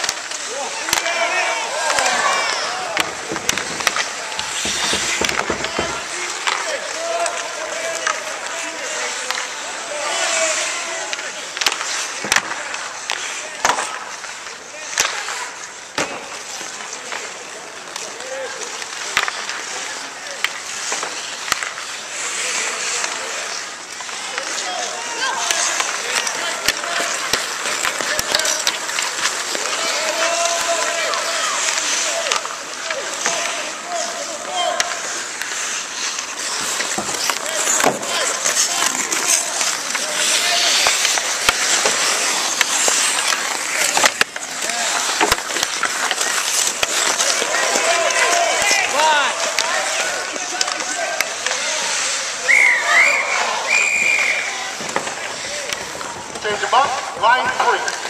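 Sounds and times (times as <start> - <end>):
hockey sticks and puck clacking: 0.0 - 58.0
people calling and shouting: 0.0 - 58.0
skates scraping on ice: 0.0 - 58.0.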